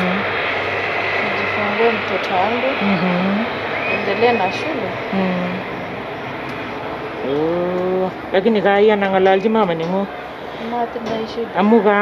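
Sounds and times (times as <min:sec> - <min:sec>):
steady background noise: 0:00.0 - 0:12.0
woman vocalizing: 0:02.8 - 0:03.4, 0:05.1 - 0:05.6.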